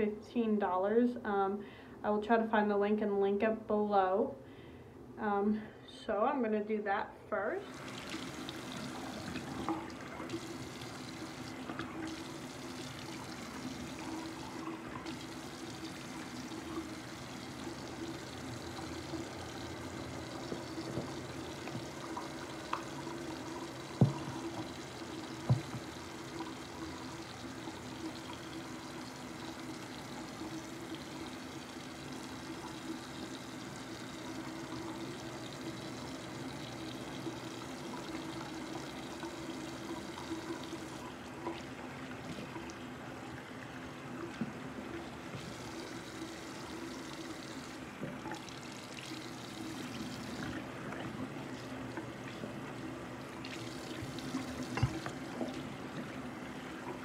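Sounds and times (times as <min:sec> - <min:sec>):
tap water running into sink: 0:07.7 - 0:57.0.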